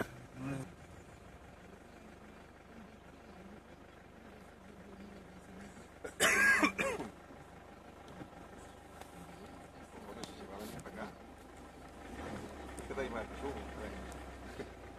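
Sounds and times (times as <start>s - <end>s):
faint engine hum: 0.0s - 14.9s
person clearing throat: 6.1s - 7.1s.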